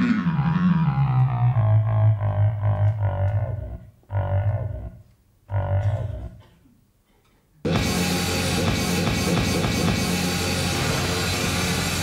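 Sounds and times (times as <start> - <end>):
low wobbling synthesizer notes: 0.0 - 6.2.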